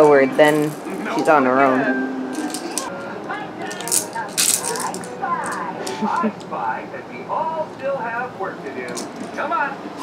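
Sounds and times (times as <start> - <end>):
baby rattle shaking: 0.4 - 1.4, 2.3 - 2.9, 3.7 - 6.2.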